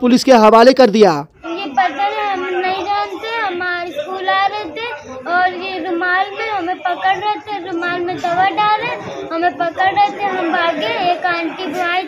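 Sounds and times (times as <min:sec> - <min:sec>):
girl talking: 0:01.6 - 0:12.0.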